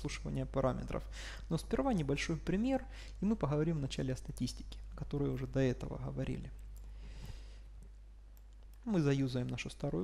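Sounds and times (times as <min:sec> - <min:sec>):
man speaking: 0:00.0 - 0:06.6, 0:08.8 - 0:10.0.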